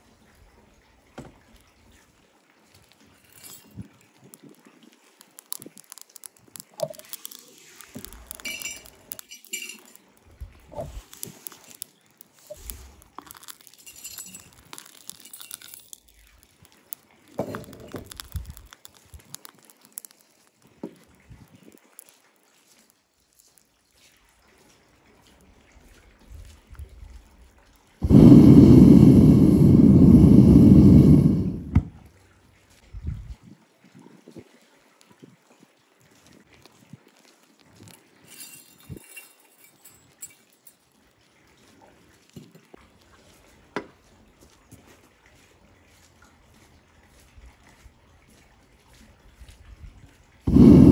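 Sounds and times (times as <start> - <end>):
metal crackling in crucible: 2.7 - 24.4, 27.9 - 32.0, 36.2 - 40.9, 50.4 - 50.9
furnace gas burner roaring: 17.4 - 19.4, 28.0 - 32.1, 50.5 - 50.9.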